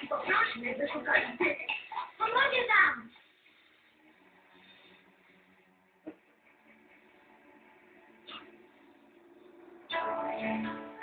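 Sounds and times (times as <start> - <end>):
low steady hum: 3.0 - 11.0.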